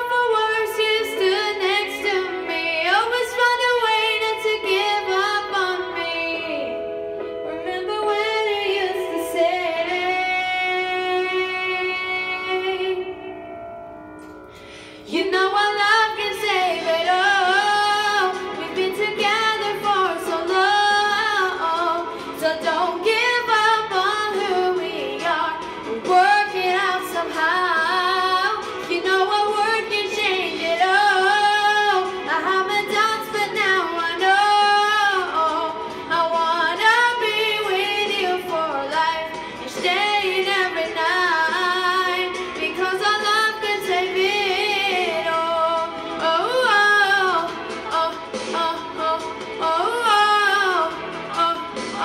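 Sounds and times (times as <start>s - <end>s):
girl singing with vibrato: 0.0s - 13.6s, 14.5s - 52.0s.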